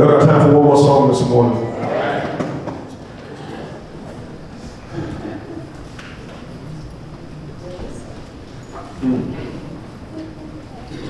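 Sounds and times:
faint voices: 1.6 - 11.0.

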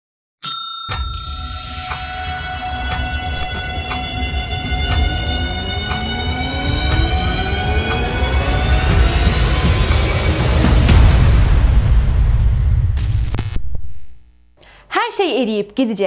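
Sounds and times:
clock ticking: 0.9 - 8.0
dramatic intro music: 1.2 - 13.6
sharp hit: 1.4 - 14.2
low rumbling drone: 1.8 - 14.2.

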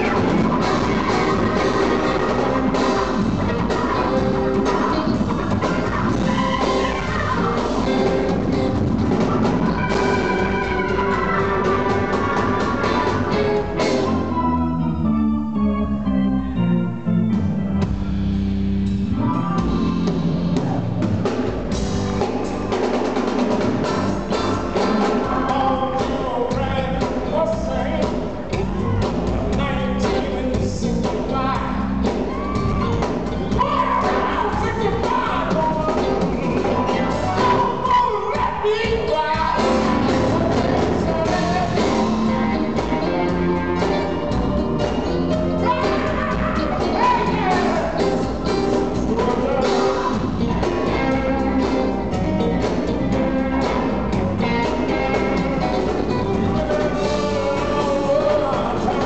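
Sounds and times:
drums and cymbals: 0.0 - 14.3, 17.8 - 59.0
blues band playing: 0.0 - 59.0
electric guitar: 0.0 - 59.0
organ chords: 0.0 - 59.0.

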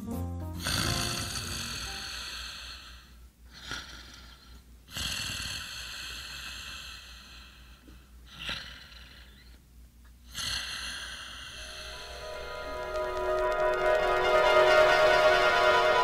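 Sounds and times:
music: 0.0 - 2.0, 11.6 - 16.0
person snoring: 0.6 - 9.5.

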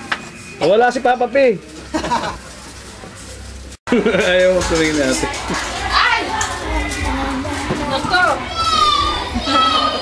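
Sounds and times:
background chatter: 0.0 - 10.0
child's high call: 8.5 - 10.0
children squealing: 8.5 - 10.0.

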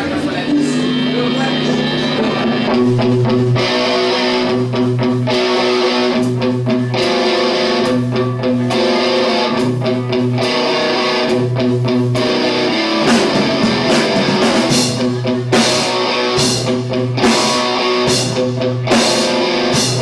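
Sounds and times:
bass guitar figure: 0.0 - 20.0
electric guitar riff: 0.0 - 20.0.

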